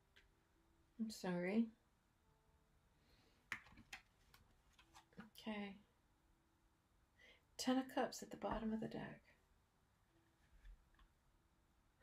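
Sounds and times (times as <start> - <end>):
cards clicking and tapping: 3.5 - 5.3.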